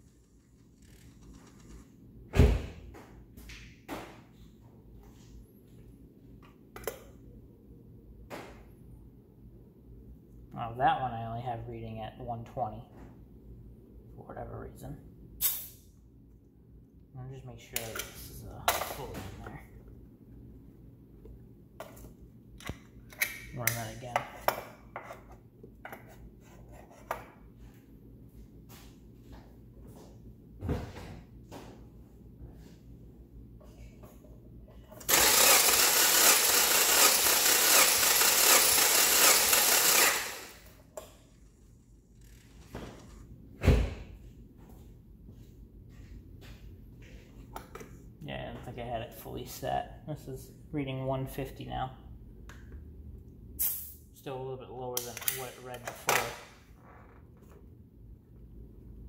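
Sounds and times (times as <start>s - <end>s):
loud thump: 2.3s - 2.8s, 43.6s - 44.1s
engine cranking on starter: 35.0s - 40.6s.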